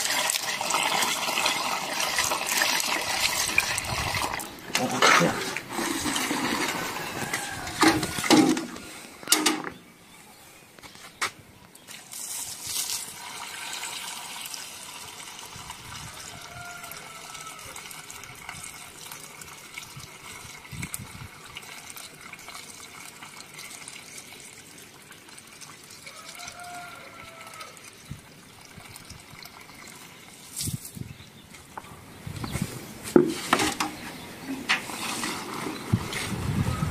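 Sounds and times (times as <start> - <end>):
water pouring into a barrel: 0.0 - 9.1, 11.8 - 31.6, 32.8 - 36.9.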